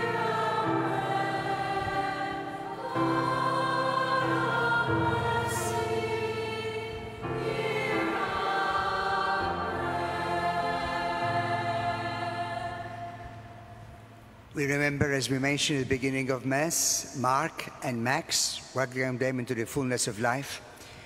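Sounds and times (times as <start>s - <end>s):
choir singing: 0.0s - 13.8s
held accompanying chords: 0.0s - 15.3s.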